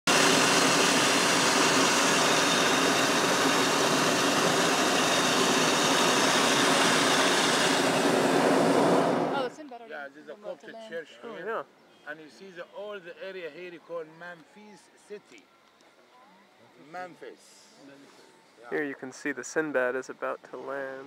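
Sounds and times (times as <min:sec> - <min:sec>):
propane burner roaring: 0:00.1 - 0:09.5.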